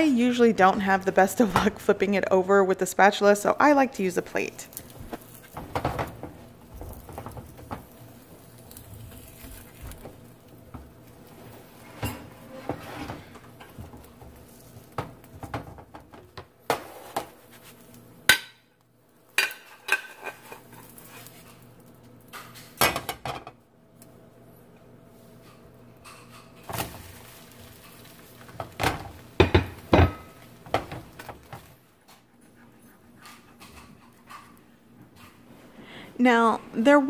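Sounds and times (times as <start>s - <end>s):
spatula knocking on frying pan: 29.4s - 31.0s.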